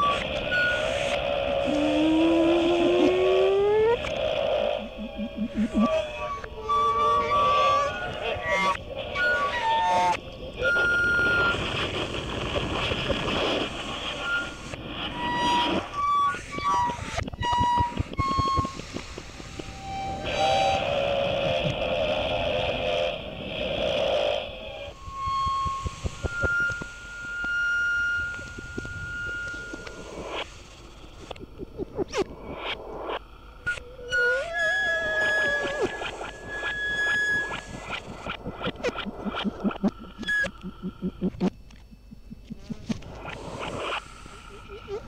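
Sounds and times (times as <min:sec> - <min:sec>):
held whistle-like tones: 0:14.2 - 0:21.0, 0:24.9 - 0:31.8, 0:33.6 - 0:45.0
hiss: 0:28.4 - 0:31.3.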